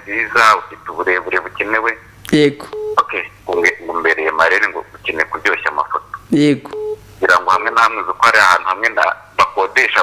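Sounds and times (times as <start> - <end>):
caller's voice over phone speaker: 2.6 - 10.0
steady phone tone: 2.8 - 3.3, 6.7 - 7.1.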